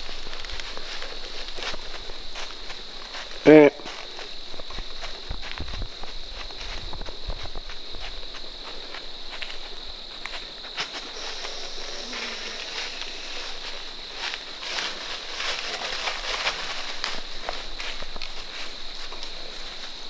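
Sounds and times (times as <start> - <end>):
deer steps crunching dry leaves: 0.0 - 20.0
steady high-pitched whine: 0.0 - 20.0.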